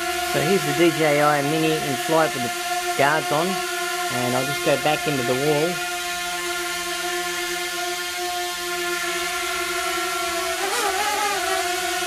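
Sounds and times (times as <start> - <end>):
drone propellers whining: 0.0 - 12.0.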